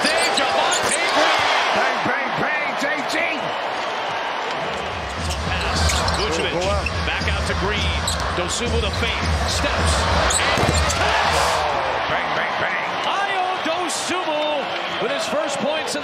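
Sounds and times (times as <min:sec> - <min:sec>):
sneakers squeaking on court: 0:00.0 - 0:01.5, 0:04.7 - 0:07.0, 0:10.2 - 0:11.1
arena crowd noise: 0:00.0 - 0:16.0
basketball bouncing: 0:10.2 - 0:11.2.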